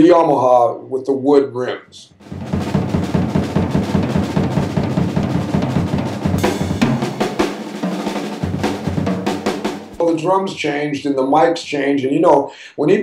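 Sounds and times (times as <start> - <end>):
cymbals washing: 2.2 - 10.1
fast drum strokes: 2.2 - 10.7.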